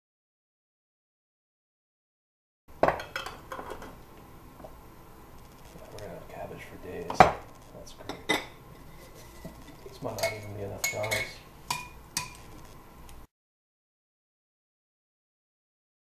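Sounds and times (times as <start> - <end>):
clinks and scraping: 7.3 - 12.7.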